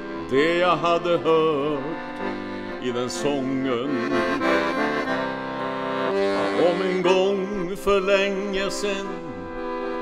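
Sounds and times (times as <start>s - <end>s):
piano accordion chords: 0.0s - 10.0s.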